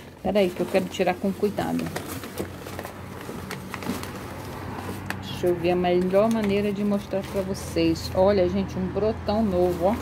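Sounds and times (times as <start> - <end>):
packing paper rustling: 0.3 - 7.9.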